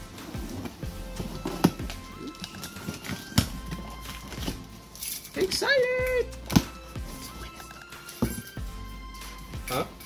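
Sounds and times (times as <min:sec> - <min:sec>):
background music with melody: 0:00.0 - 0:10.0.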